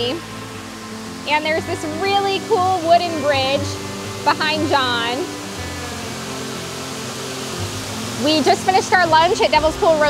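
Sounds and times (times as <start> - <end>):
soft background music: 0.0 - 10.0
waterfall rushing into pool: 0.0 - 10.0.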